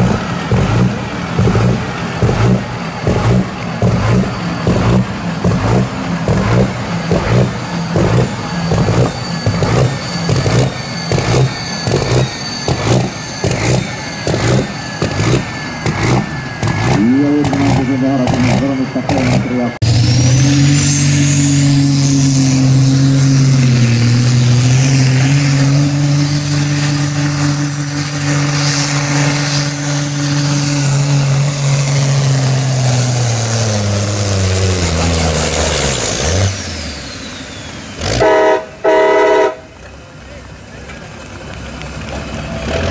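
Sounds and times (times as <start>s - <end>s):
diesel truck engine with high whine: 0.0s - 42.9s
horn blasts: 38.1s - 39.8s.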